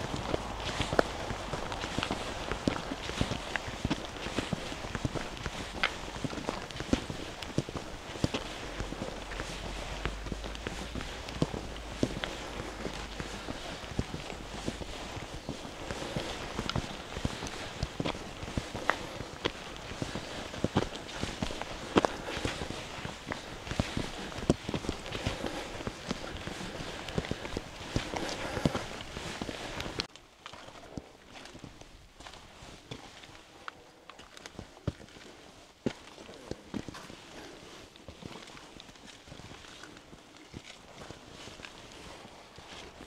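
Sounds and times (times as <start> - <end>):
footsteps on trail: 0.0 - 43.0.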